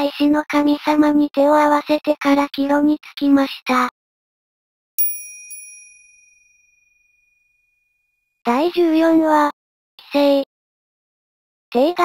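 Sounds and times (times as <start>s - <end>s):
bell chime: 5.0s - 7.6s.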